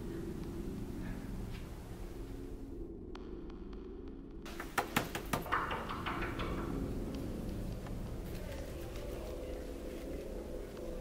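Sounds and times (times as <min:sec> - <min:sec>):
steady low hum: 0:00.0 - 0:04.7, 0:05.4 - 0:11.0.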